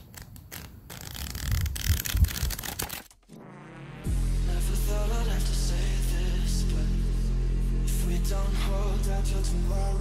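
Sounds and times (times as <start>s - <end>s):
book pages flipping: 0.0s - 3.3s.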